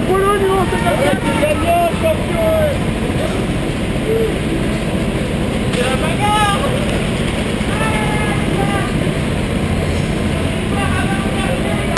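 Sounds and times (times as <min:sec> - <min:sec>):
kart engines running: 0:00.0 - 0:11.9.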